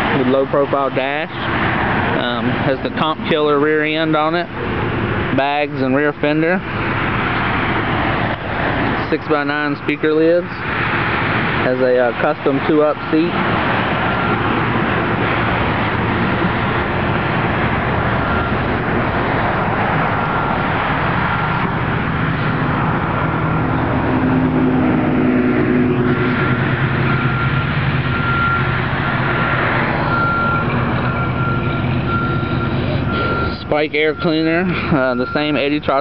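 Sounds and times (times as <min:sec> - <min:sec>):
vehicle engine running: 0:00.0 - 0:36.0.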